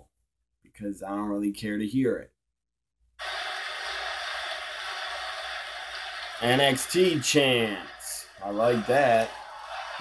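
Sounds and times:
steady hiss: 3.2s - 9.9s.

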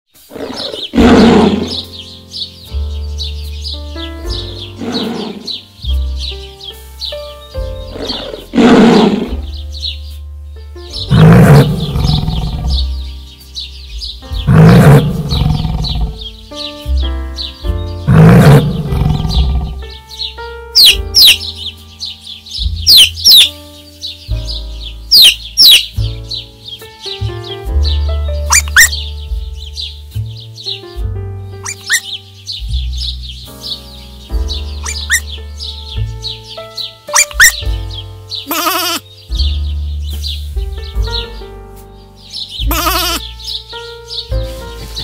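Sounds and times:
quick high bird chirps: 0.1s - 10.2s, 17.4s - 26.9s, 27.8s - 30.9s, 31.5s - 41.5s, 42.2s - 45.0s
background music: 0.2s - 45.0s
large animal calling: 0.3s - 1.9s, 4.4s - 5.6s, 7.8s - 9.5s, 11.1s - 13.0s, 14.4s - 16.2s, 18.0s - 19.8s, 20.8s - 21.4s, 22.9s - 23.6s, 25.1s - 26.0s, 28.5s - 29.0s, 31.6s - 32.1s, 34.8s - 35.3s, 37.1s - 37.7s, 38.5s - 39.0s, 42.6s - 43.4s.

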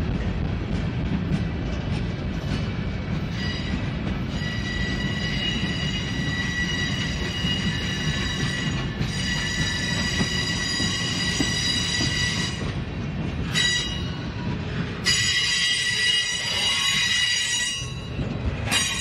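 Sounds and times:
freight train rolling rumble: 0.0s - 19.0s
steel wheel squeal: 3.3s - 12.7s, 13.5s - 14.2s, 15.0s - 19.0s.

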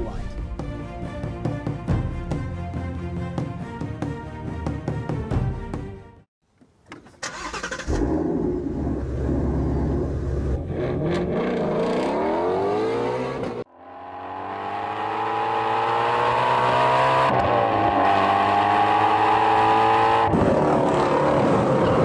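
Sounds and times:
car engine starting and revving: 7.2s - 22.0s
car accelerating hard: 7.4s - 22.0s.

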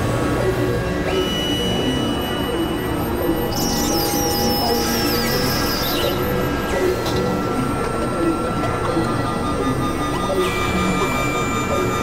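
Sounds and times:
electronic drone and noise music: 0.0s - 12.0s.

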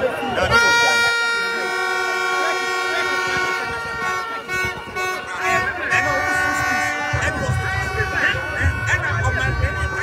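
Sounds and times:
crowd chatter: 0.0s - 10.0s
horn long loud note: 0.2s - 10.0s.

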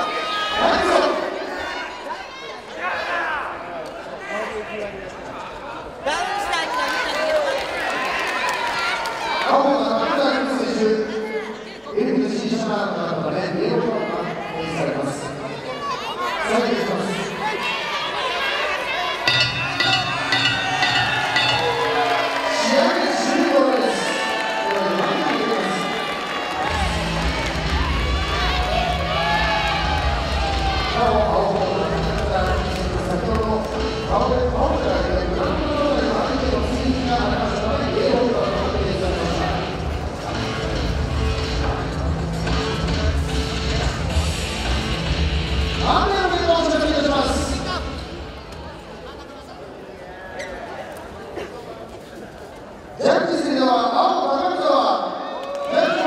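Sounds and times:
arena crowd noise: 0.0s - 56.0s
music over loudspeakers: 26.6s - 48.5s.

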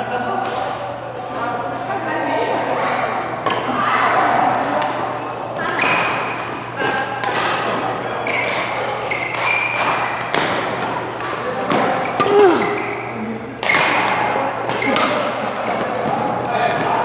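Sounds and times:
racket striking shuttlecock: 5.6s - 12.6s, 13.6s - 16.2s
shoes squeaking on court: 8.2s - 10.3s, 11.9s - 16.9s.

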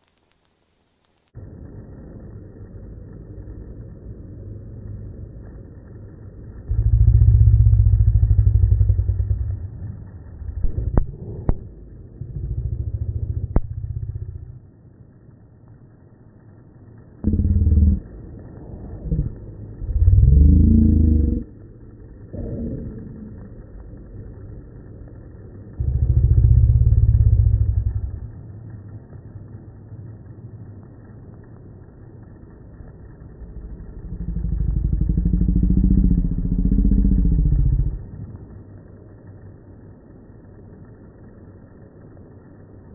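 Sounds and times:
slowed plane engine drone: 1.3s - 42.9s
sharp clicks: 4.9s - 39.5s.

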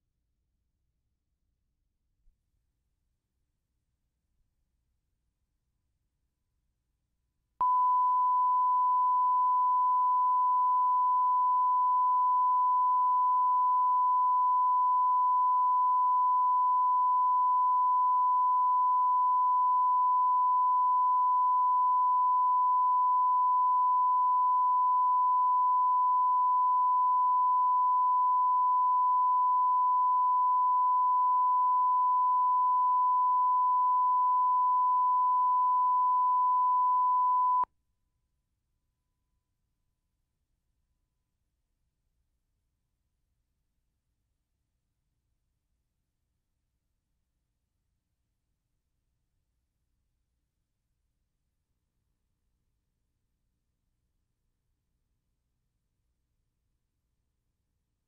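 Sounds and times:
steady test tone: 7.6s - 37.7s.

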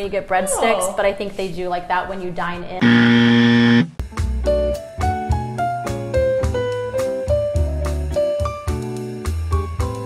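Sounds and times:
woman speaking: 0.0s - 2.8s
wrong answer buzzer: 2.8s - 3.9s.

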